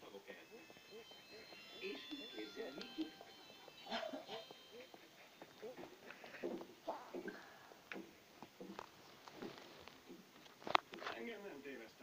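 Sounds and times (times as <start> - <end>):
muffled voices: 0.0 - 7.5.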